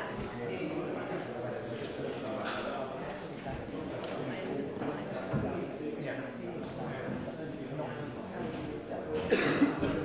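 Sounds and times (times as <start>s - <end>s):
hubbub of overlapping conversation: 0.0s - 10.0s
person coughing: 9.3s - 10.0s.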